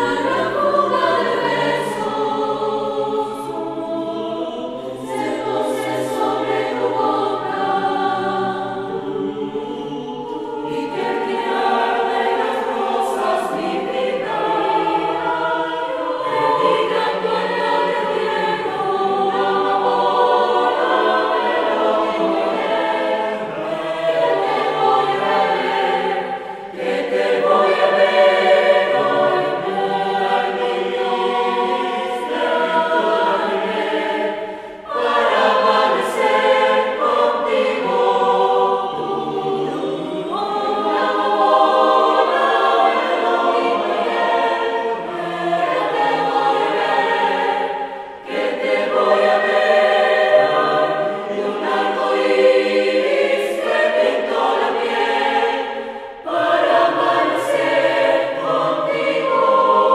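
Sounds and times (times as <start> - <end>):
mixed choir singing: 0.0 - 59.9.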